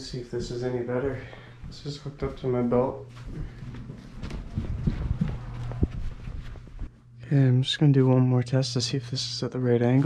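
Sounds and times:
footsteps walking: 0:00.0 - 0:07.1
clothing rustling: 0:03.0 - 0:07.0.

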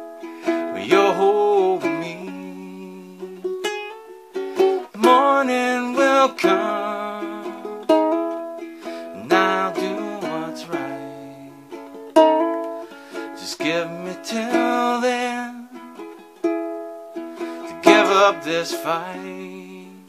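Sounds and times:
ukulele chords ringing: 0:00.0 - 0:20.0.

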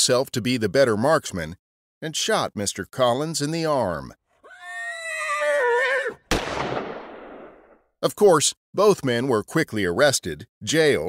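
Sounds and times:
horse whinnying: 0:04.4 - 0:06.3
gunshot ringing: 0:06.3 - 0:07.8.

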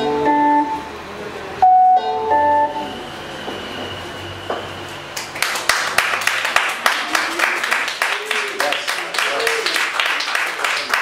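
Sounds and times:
electronic music chord: 0:00.0 - 0:03.0.

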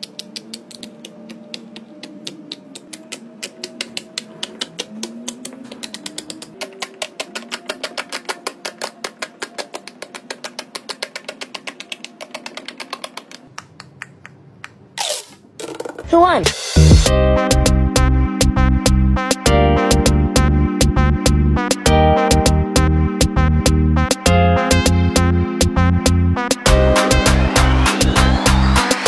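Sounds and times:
soft background music: 0:00.0 - 0:13.1, 0:16.6 - 0:29.0.

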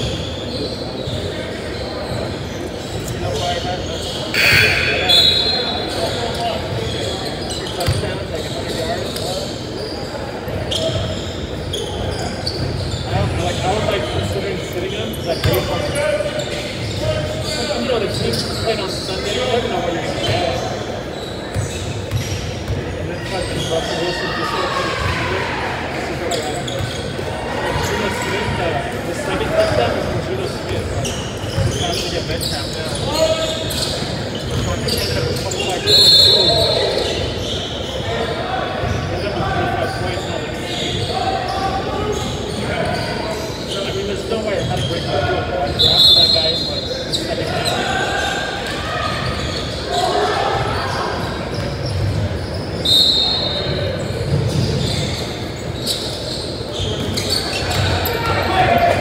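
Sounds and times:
referee's whistle trilling: 0:03.3 - 0:06.4, 0:34.9 - 0:37.6, 0:45.7 - 0:47.7, 0:52.6 - 0:54.0
indistinct players' voices: 0:04.3 - 0:05.9.

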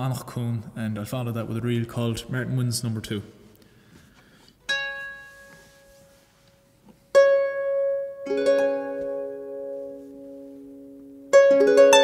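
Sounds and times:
harp notes plucked: 0:04.7 - 0:06.2, 0:07.1 - 0:12.0.

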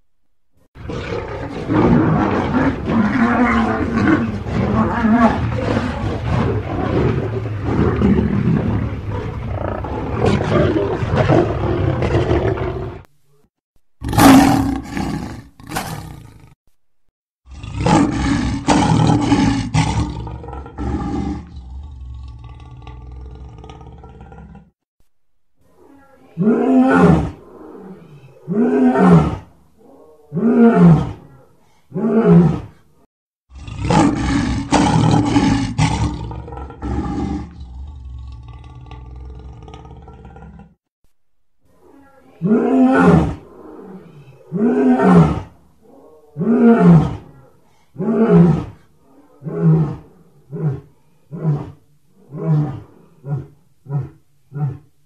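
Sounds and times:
lion roaring: 0:00.8 - 0:13.1, 0:17.5 - 0:24.7, 0:33.5 - 0:40.8, 0:41.8 - 0:54.9.

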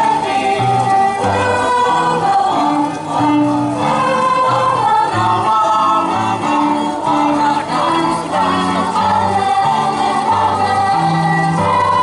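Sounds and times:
children's choir singing folk song: 0:00.0 - 0:12.0
violin accompaniment: 0:00.0 - 0:12.0.

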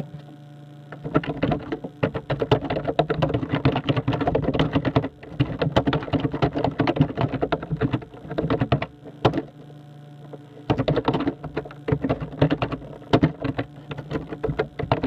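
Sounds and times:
steady low hum: 0:00.0 - 0:15.0
rapid uneven clicking: 0:01.0 - 0:09.6, 0:10.6 - 0:15.0.

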